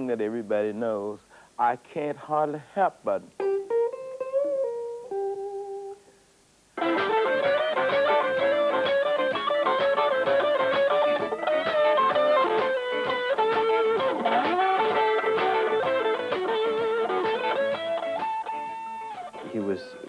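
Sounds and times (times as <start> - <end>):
blues electric guitar: 3.2 - 6.1, 6.8 - 20.0
band playing: 6.8 - 20.0.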